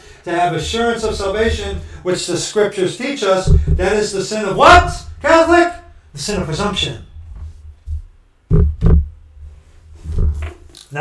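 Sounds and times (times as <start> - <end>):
low steady hum: 0.0 - 2.8, 3.4 - 10.8
dull handling thumps: 0.3 - 2.1, 3.4 - 10.7.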